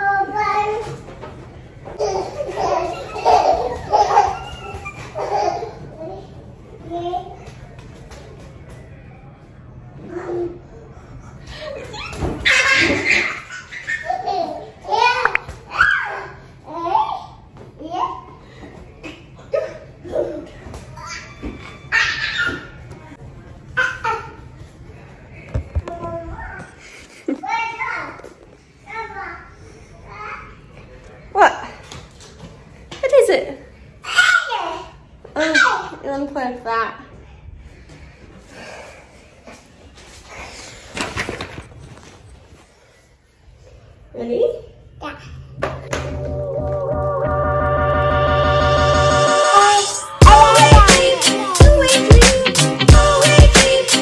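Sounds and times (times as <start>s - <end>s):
toddler squealing and laughing: 2.5s - 5.6s, 11.9s - 14.4s, 21.0s - 22.8s.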